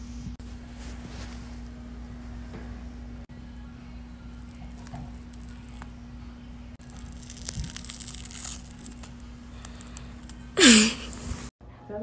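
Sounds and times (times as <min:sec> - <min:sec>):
face mask peeling off skin: 0:06.8 - 0:11.3.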